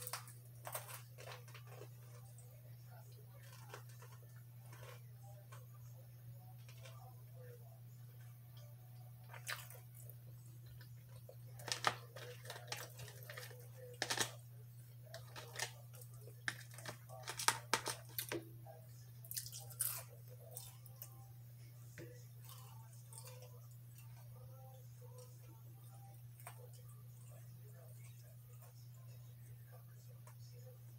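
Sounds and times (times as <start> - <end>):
person chewing fries: 0.0 - 5.8, 6.5 - 7.2, 9.2 - 14.4, 15.0 - 18.4, 19.2 - 21.2, 22.1 - 24.4
steady low hum: 0.0 - 30.9.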